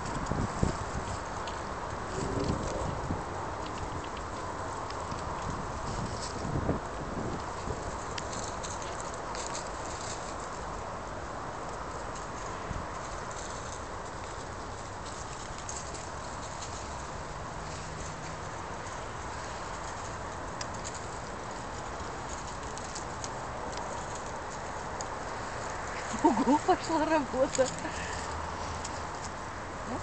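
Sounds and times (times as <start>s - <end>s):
squirrels scampering over dry leaves: 0.0s - 30.0s
steady outdoor hiss: 0.0s - 30.0s.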